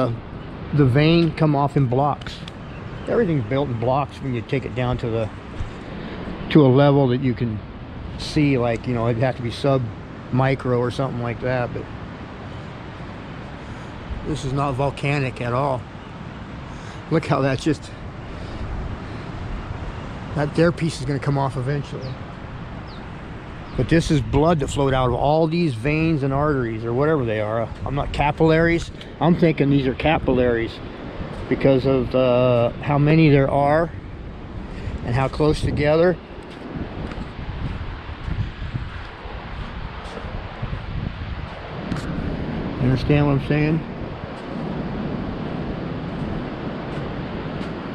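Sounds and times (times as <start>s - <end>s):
wind rumbling on microphone: 0.0s - 47.9s.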